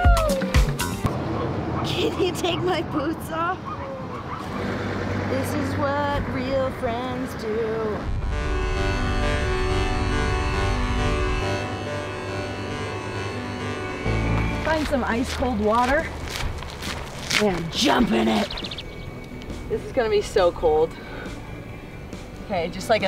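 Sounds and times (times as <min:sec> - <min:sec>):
background music with sustained chords: 0:06.0 - 0:16.8, 0:17.7 - 0:23.0
voices with sliding pitch: 0:17.3 - 0:18.9.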